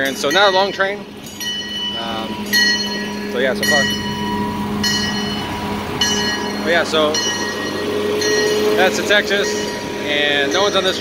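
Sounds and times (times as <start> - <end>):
amusement park train running: 0.0 - 11.0
bell ringing: 0.0 - 11.0
low hum: 0.0 - 11.0.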